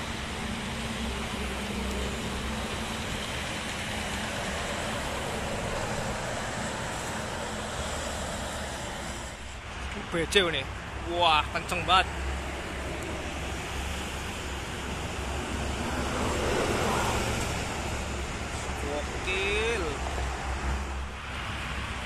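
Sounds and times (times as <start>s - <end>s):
road traffic noise: 0.0s - 22.0s.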